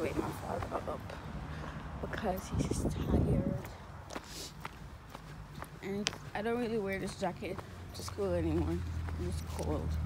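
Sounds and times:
footsteps walking: 0.0s - 10.0s.

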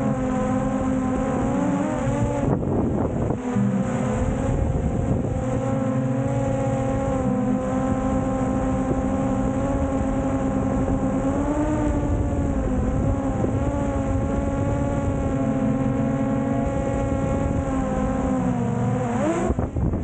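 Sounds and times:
drone propellers whining: 0.0s - 20.0s.

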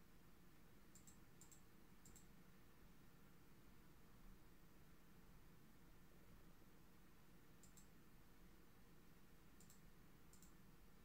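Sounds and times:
computer mouse clicks: 0.9s - 2.4s, 7.6s - 8.0s, 9.6s - 10.6s.

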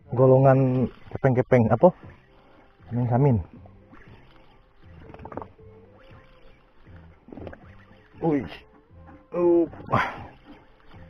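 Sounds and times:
fishing reel whirring: 0.0s - 11.0s.

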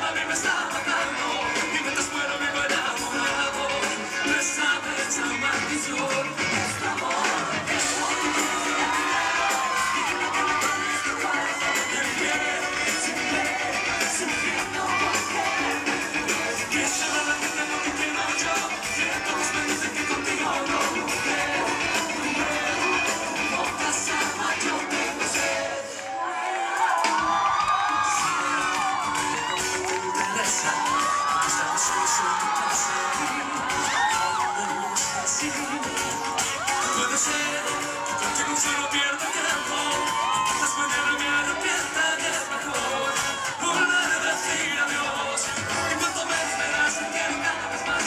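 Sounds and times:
audience cheering and shouting: 0.0s - 48.0s
live pop band music: 0.0s - 48.0s.

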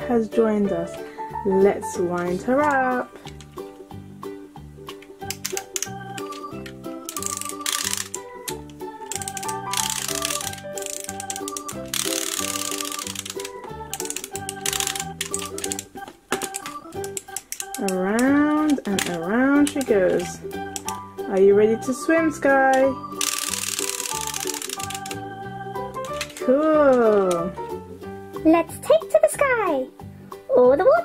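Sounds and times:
upbeat background music: 0.0s - 31.0s
toy winder clicking: 5.3s - 21.0s, 22.7s - 25.4s, 26.0s - 27.4s.

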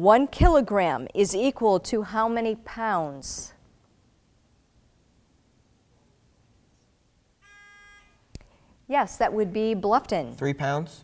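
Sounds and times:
quiz buzzer tone: 7.4s - 8.3s.

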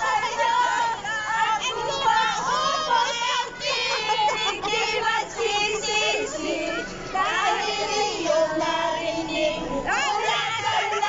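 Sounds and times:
women shrieking and laughing: 2.6s - 5.0s, 10.1s - 11.0s.

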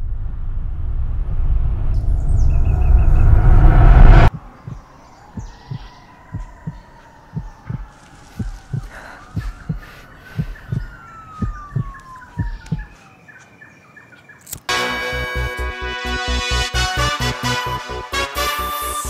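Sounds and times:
loud rushing noise: 0.0s - 4.8s
slow heartbeat thumps: 4.0s - 13.0s
high chirps: 4.3s - 13.2s.

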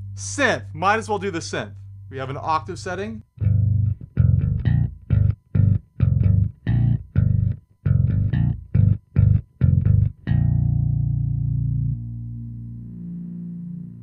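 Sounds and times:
electric bass synth notes: 3.3s - 14.0s.

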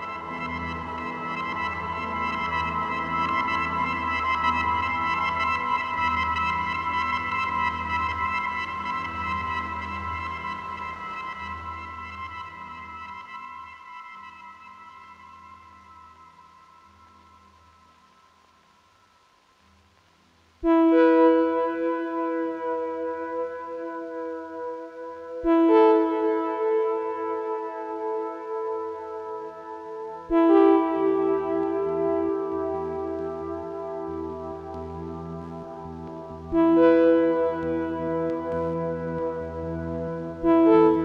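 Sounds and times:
ambient synthesizer music: 0.0s - 18.3s, 20.6s - 41.0s
keyboard chord: 20.7s - 41.0s.

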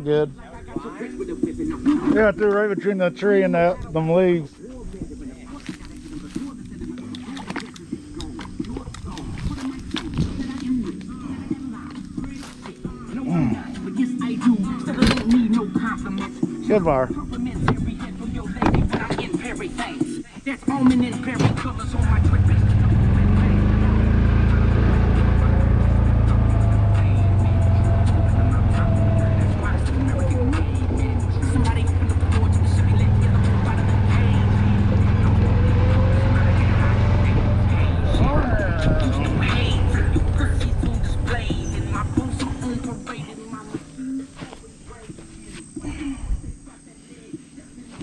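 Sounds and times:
golf cart drive drone: 21.6s - 43.0s.

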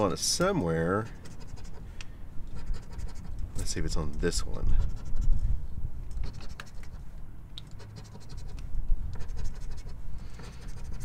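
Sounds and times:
coin scraping scratch-off ticket: 7.7s - 8.6s, 9.2s - 11.0s.

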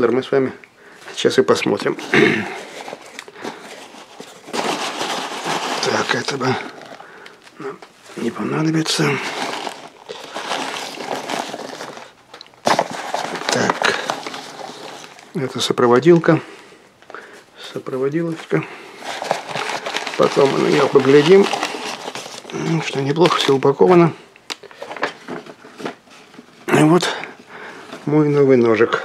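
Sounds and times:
foam packing peanuts rustling: 0.9s - 29.0s
plastic bag crinkling: 1.1s - 16.5s, 17.1s - 28.2s.

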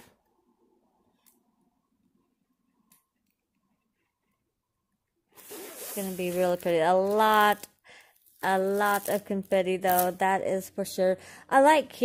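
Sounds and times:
woman speaking: 6.0s - 7.7s, 8.4s - 12.0s.

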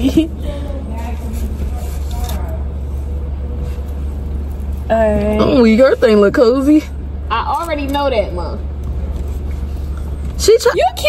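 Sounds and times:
car idling hum: 0.0s - 11.0s.

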